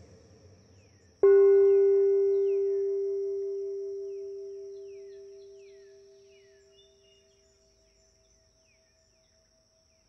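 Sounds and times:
singing bowl ringing: 1.2 - 7.6.

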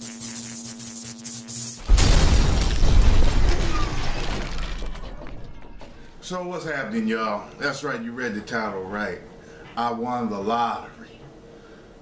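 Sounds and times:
glass shattering: 1.9 - 5.5.

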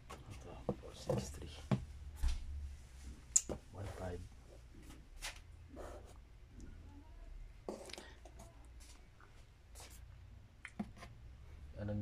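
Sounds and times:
faint rustles or scuffs: 4.8 - 5.5.

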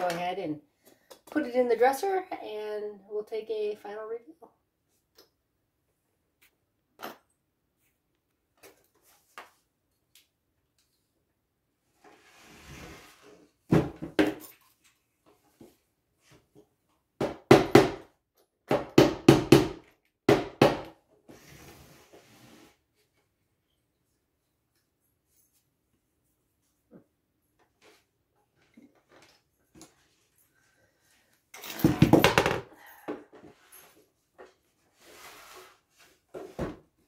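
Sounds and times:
short scrape: 12.0 - 13.4, 21.3 - 22.8, 35.0 - 35.9.

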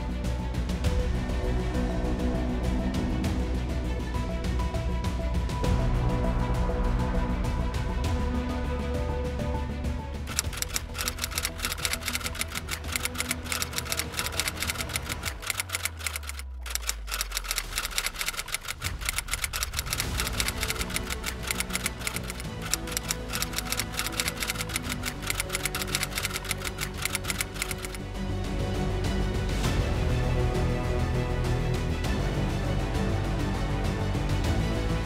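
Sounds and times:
background music: 0.0 - 35.0
typewriter key clicks: 10.3 - 28.0.

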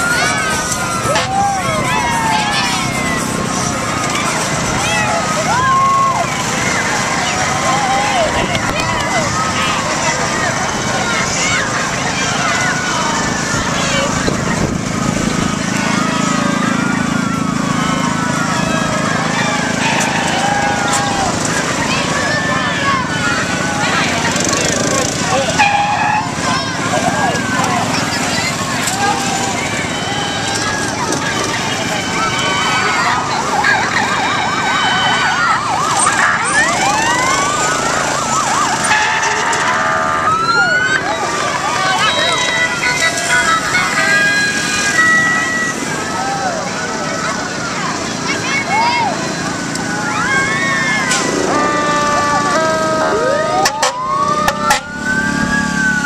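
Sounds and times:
loud held call: 0.0 - 14.2, 16.2 - 47.2, 48.7 - 55.1
crowd calling and shouting: 0.0 - 56.0
small engines driving past: 0.0 - 56.0
vehicle siren yelping: 0.0 - 56.0
horn sounding a steady chord: 0.9 - 4.0, 24.9 - 26.5, 34.2 - 40.8, 51.1 - 55.9.

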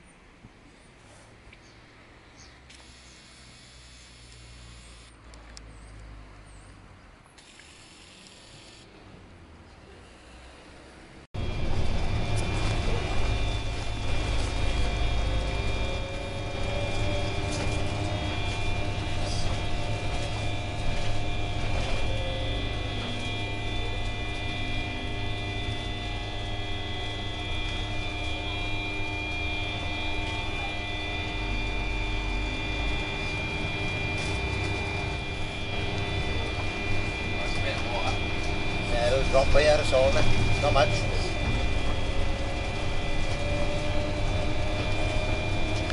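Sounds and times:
constant whine: 0.0 - 45.9
engine and road rumble: 0.0 - 45.9.

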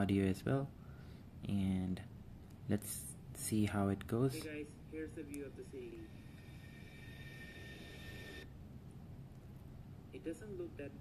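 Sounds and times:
low hum: 4.6 - 9.6
high whining tones: 5.5 - 8.5.

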